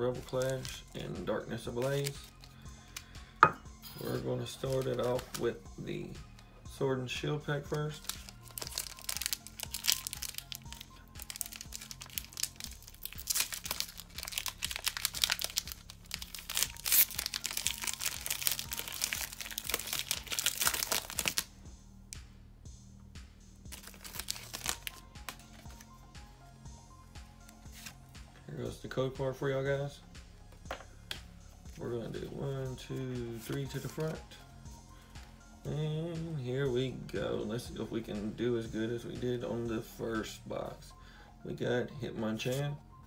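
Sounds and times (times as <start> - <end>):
soft background music: 0.0 - 43.0
foil wrapper crinkling and tearing: 0.2 - 0.8, 4.6 - 5.4, 8.0 - 21.5, 23.7 - 25.8.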